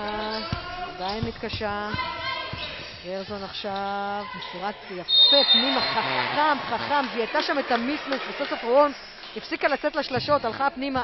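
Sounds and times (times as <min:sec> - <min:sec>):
basketball dribbling on hardwood: 0:00.4 - 0:03.6
shrill high note: 0:05.1 - 0:06.0.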